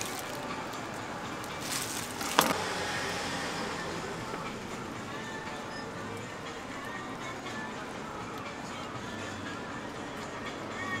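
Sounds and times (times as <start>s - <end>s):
street food stall hum: 0.0s - 11.0s.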